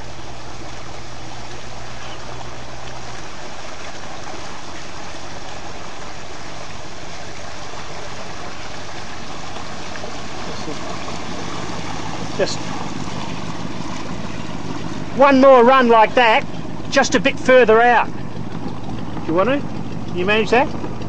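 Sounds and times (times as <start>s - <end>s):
boat engine drone: 0.0s - 21.0s
water rushing around boat: 0.0s - 21.0s.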